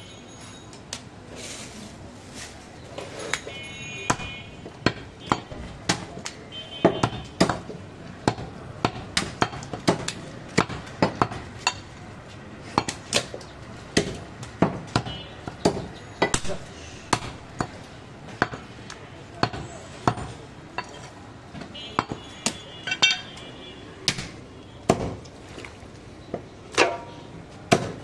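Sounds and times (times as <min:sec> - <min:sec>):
cleaver chopping meat on wood: 0:04.1 - 0:11.9, 0:12.7 - 0:17.8, 0:19.4 - 0:20.3, 0:24.0 - 0:25.2, 0:27.7 - 0:28.0.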